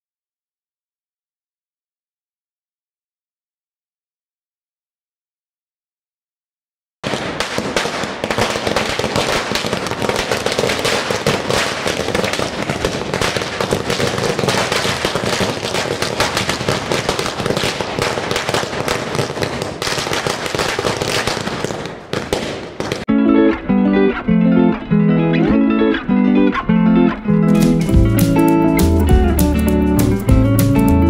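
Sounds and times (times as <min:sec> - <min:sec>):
firecrackers banging: 0:07.0 - 0:26.1, 0:27.2 - 0:29.4.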